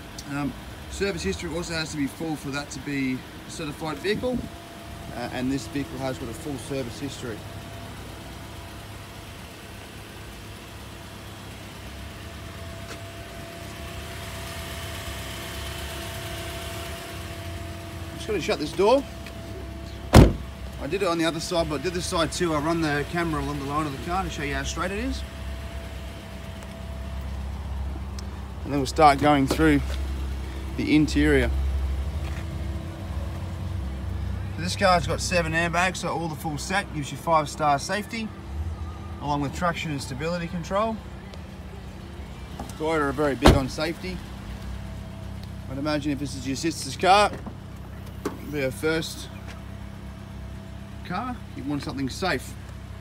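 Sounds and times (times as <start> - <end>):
car engine idling: 0.0 - 53.0.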